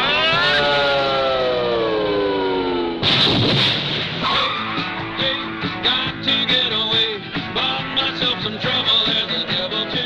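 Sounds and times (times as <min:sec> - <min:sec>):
music: 0:03.5 - 0:10.0.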